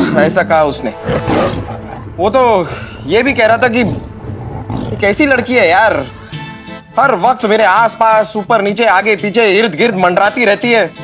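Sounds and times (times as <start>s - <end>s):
man speaking: 0.0s - 4.1s, 4.9s - 6.2s.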